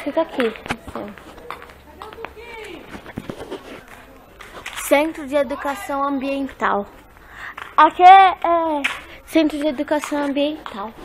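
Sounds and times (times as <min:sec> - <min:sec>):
faint voices: 0:00.0 - 0:11.0
footsteps: 0:00.0 - 0:11.0.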